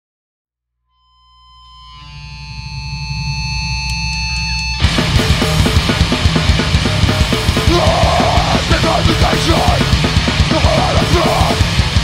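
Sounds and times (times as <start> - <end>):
guitar amplifier feedback: 0.8 - 12.0
low distorted drone: 1.2 - 12.0.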